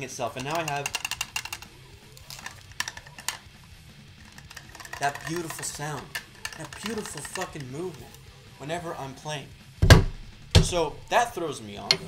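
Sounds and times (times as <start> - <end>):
metal grinding: 4.2 - 8.2
drum pedal hinge clicking: 4.3 - 8.2.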